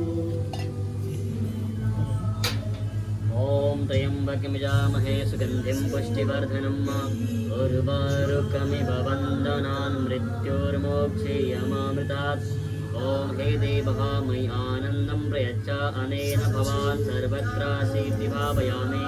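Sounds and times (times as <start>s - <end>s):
steady low drone: 0.0s - 19.0s
voices chanting a mantra: 0.0s - 19.0s.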